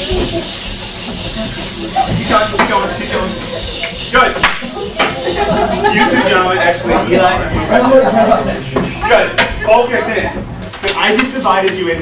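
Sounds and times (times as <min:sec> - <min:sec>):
steady hiss: 0:00.0 - 0:06.9.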